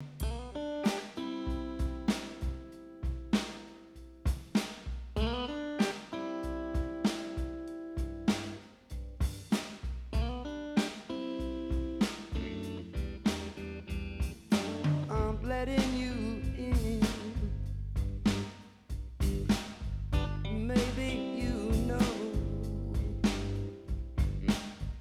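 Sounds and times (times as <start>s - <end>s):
guitar chords ringing: 0.0s - 3.4s, 20.2s - 24.2s
drum kit beat: 0.0s - 25.0s.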